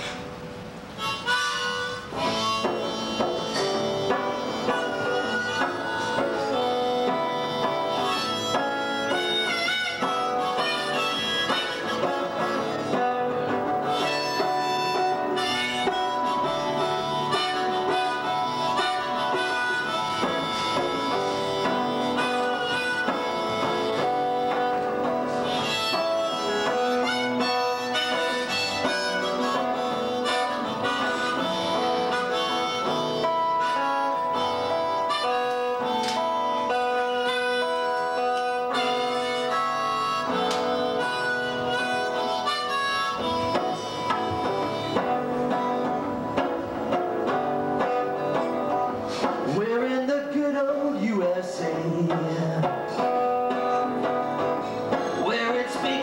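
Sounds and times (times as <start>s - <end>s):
acoustic guitar: 0.0s - 56.0s
harmonica melody: 0.0s - 56.0s.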